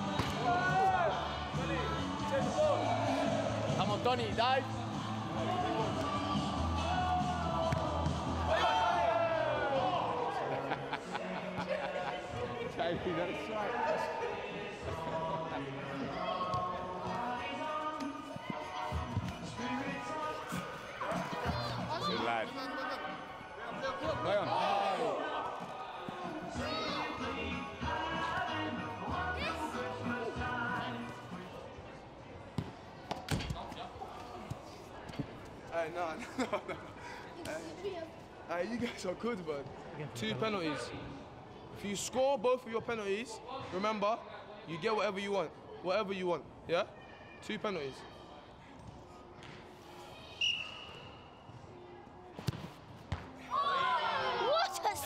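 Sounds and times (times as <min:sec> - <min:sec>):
background music: 0:00.0 - 0:31.7
football kicked and bouncing: 0:52.4 - 0:53.3
children shouting and cheering: 0:53.5 - 0:55.0.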